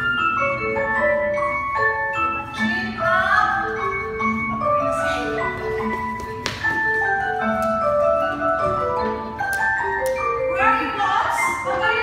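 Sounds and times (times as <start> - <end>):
ballet class piano melody: 0.0 - 12.0.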